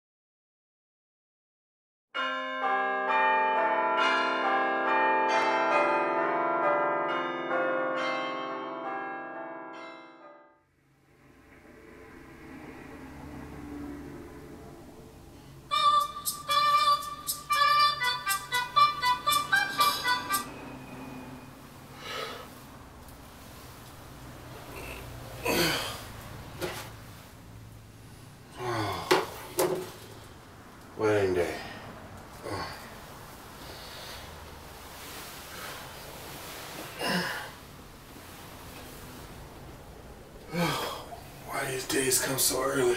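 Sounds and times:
church bells pealing: 0:02.2 - 0:10.5
man groaning sleepily: 0:24.7 - 0:26.2, 0:28.5 - 0:29.4, 0:32.4 - 0:33.0, 0:36.9 - 0:37.7, 0:40.5 - 0:41.2.

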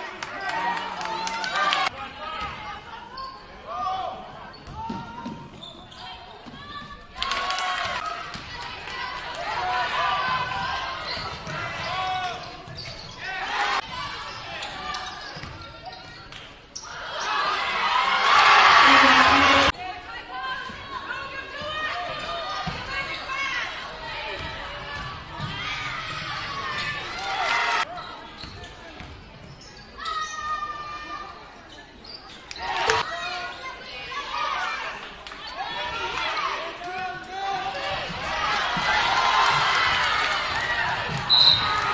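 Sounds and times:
shouts and voices: 0:16.9 - 0:27.9.

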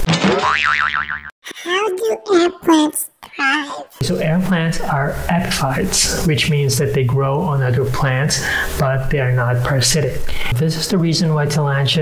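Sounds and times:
cartoon boing effect: 0:00.4 - 0:01.3.

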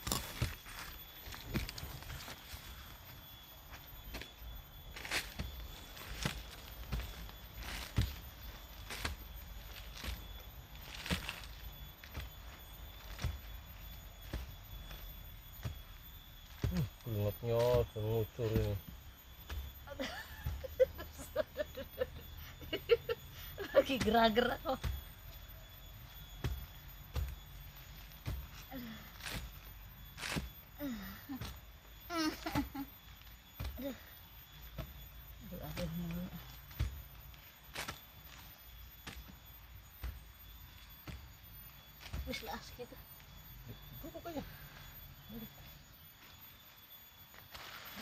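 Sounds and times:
hand tool digging in soil: 0:00.0 - 0:03.1, 0:03.8 - 0:20.7, 0:23.2 - 0:32.8, 0:33.4 - 0:43.3.

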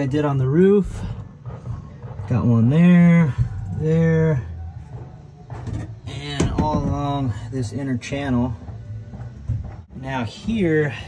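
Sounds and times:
man talking: 0:06.1 - 0:08.6, 0:09.9 - 0:11.0.

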